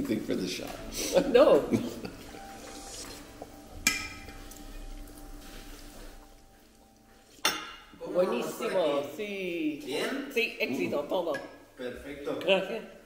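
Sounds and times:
tableware clink: 3.8 - 4.6, 7.4 - 8.0.

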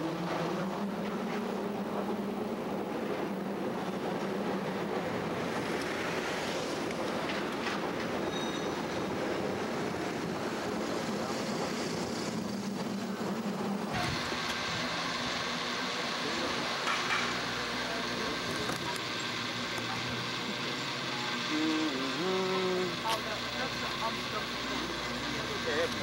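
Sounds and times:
rail car rumbling on tracks: 0.0 - 26.0.

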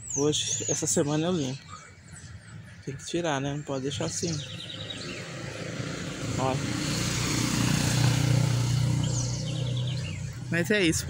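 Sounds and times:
passing vehicle engine hum: 4.3 - 11.0.

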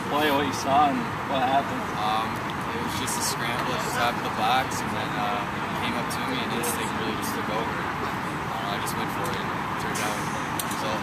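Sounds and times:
man speaking: 0.0 - 10.2.

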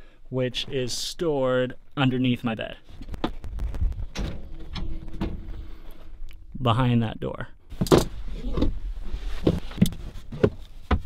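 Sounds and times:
handling noise: 3.0 - 6.3
low rumble: 3.4 - 6.6.

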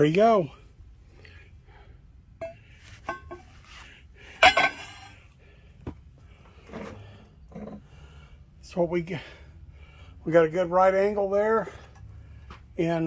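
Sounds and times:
metal clinks and knocks: 2.4 - 3.6, 4.4 - 5.2
ringing metal clang: 4.4 - 5.2.

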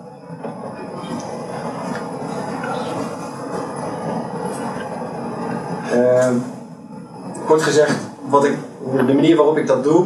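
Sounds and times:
hiss-like hum in a hall: 0.0 - 10.0.

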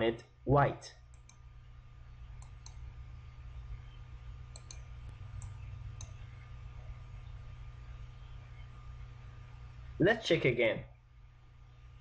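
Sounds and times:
steady low hum: 0.0 - 12.0
mouse button clicking: 2.4 - 2.8, 4.5 - 6.2.

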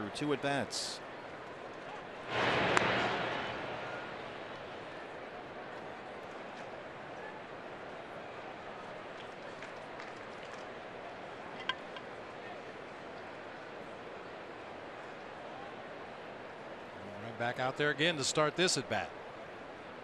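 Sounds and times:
ballpark crowd murmur: 0.0 - 20.0
baseball popping into glove: 11.6 - 12.1.

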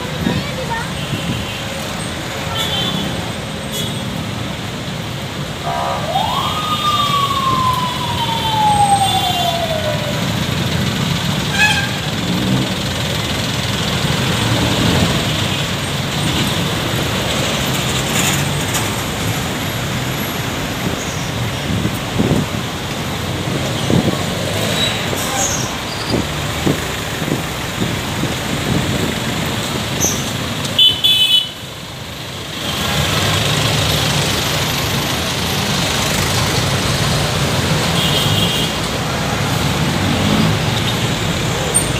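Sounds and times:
city traffic with vehicles passing: 0.0 - 41.9
siren wail: 5.6 - 10.7.

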